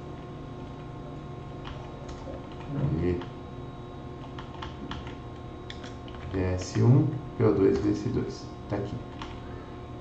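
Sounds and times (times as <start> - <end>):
keyboard keystrokes: 4.2 - 6.4.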